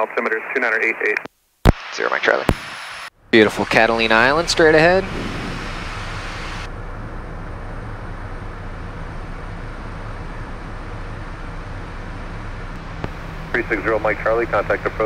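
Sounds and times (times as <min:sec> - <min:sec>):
rush of airflow: 0:02.5 - 0:06.7
turboprop engine hum: 0:02.5 - 0:15.0.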